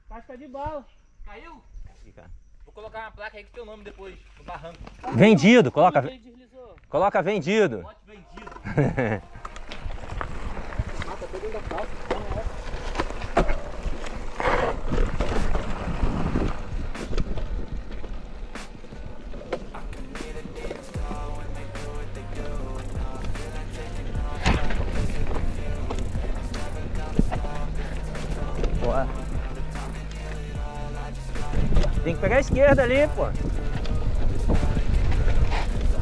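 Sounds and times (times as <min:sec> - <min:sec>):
bike tyres rolling over dirt: 0:03.4 - 0:05.6, 0:08.3 - 0:36.0
bike rattling and knocking: 0:08.4 - 0:21.6, 0:22.2 - 0:36.0
background music with bass notes: 0:16.7 - 0:36.0.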